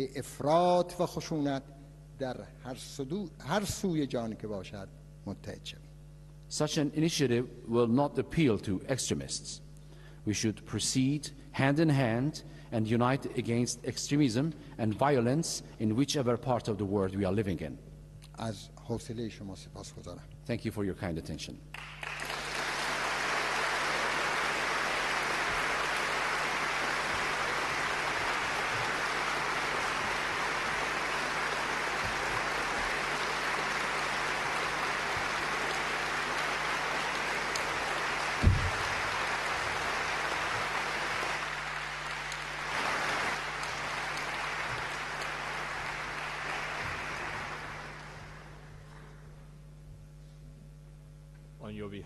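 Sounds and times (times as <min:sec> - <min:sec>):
audience applauding: 0:21.7 - 0:49.1
sharp low thump: 0:38.4 - 0:38.9.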